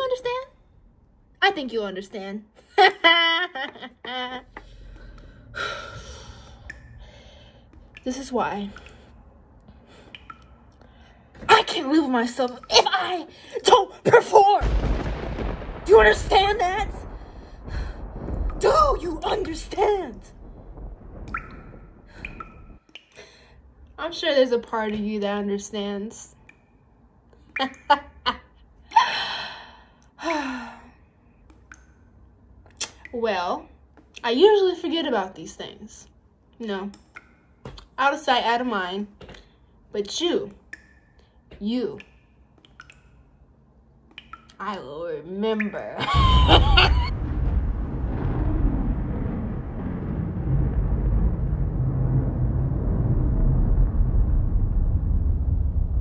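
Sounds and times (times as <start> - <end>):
woman laughing: 2.6 - 4.6, 46.0 - 47.1
low rumbling drone: 46.1 - 56.0.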